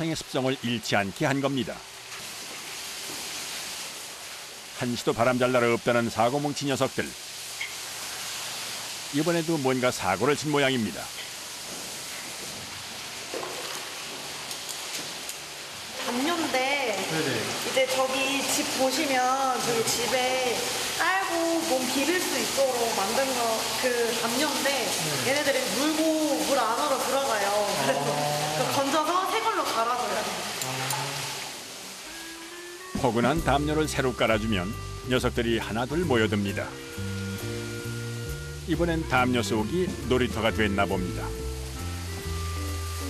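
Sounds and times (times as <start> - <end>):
water hissing in a pool: 0.4 - 43.0.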